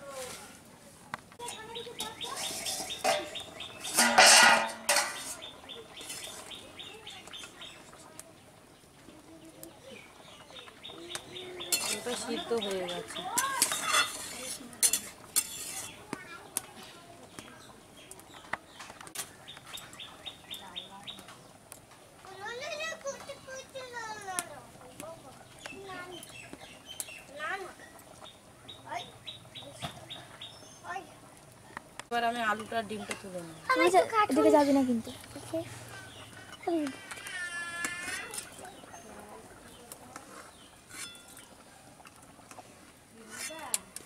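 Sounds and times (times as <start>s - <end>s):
small birds chirping: 1.4s - 44.0s
metal ladle clinking on pot: 2.0s - 5.4s, 11.7s - 12.3s, 13.3s - 16.0s.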